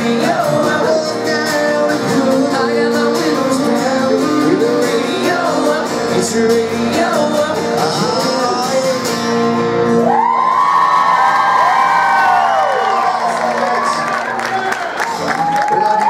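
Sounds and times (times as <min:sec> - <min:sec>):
acoustic guitars and singing: 0:00.0 - 0:14.3
crowd whooping and cheering: 0:10.0 - 0:16.0.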